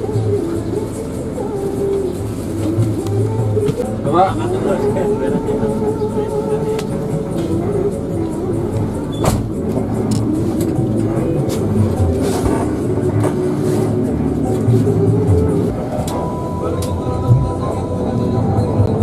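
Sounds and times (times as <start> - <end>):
bus diesel engine running: 0.0 - 19.0
music with a voice: 0.0 - 19.0.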